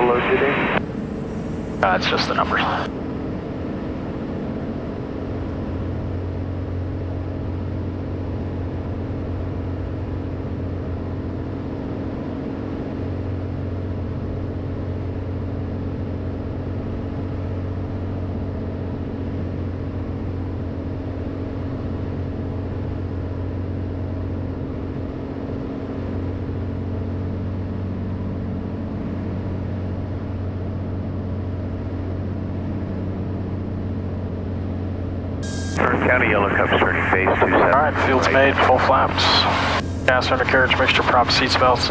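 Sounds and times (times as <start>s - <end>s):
propeller plane engine droning: 0.0s - 41.9s.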